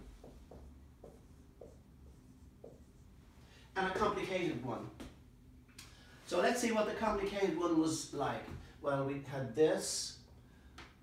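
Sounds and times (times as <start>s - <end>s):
marker writing on whiteboard: 0.0s - 3.2s.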